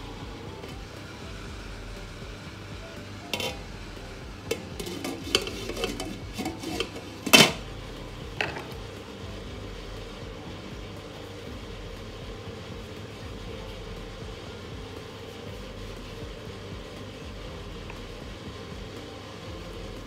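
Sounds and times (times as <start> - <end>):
cookware clanking: 3.3 - 3.7, 4.5 - 7.6.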